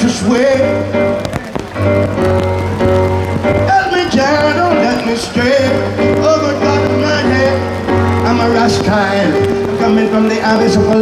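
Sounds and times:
person singing: 0:00.0 - 0:01.6, 0:03.5 - 0:11.0
bass line: 0:00.0 - 0:11.0
live reggae band: 0:00.0 - 0:11.0
rain on plastic ponchos: 0:00.0 - 0:11.0.

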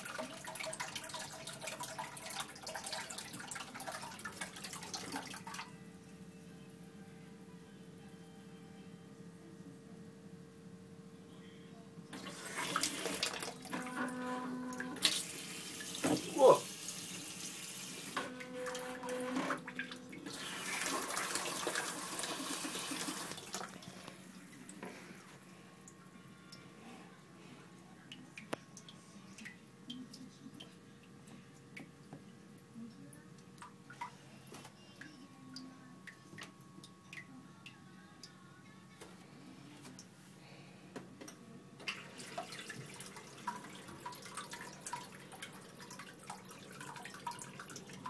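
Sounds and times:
water dripping in toilet bowl: 0:00.0 - 0:05.7, 0:28.1 - 0:34.2, 0:35.0 - 0:38.3, 0:41.9 - 0:48.0
faint steady hum: 0:00.0 - 0:48.0.

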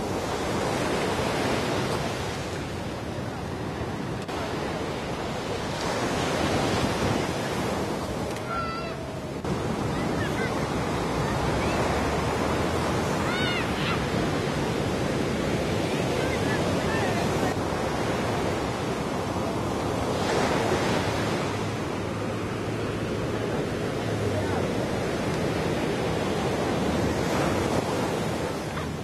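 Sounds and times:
surf: 0:00.0 - 0:29.0
people talking: 0:16.0 - 0:17.6.

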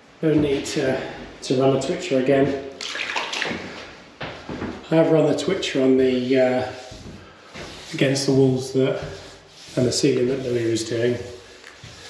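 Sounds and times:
brush working along plaster: 0:05.7 - 0:12.0.

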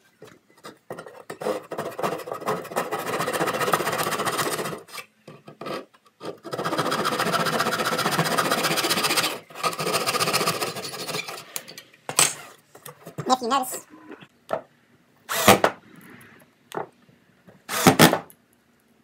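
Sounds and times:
hand saw cutting wood: 0:05.6 - 0:11.4.

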